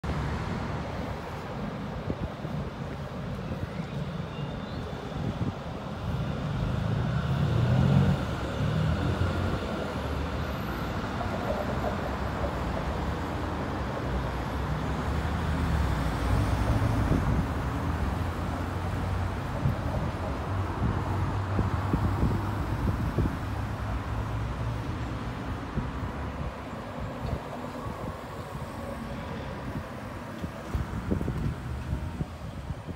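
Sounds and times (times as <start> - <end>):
tram passing: 0.0 - 32.9
cars driving past: 5.3 - 32.9.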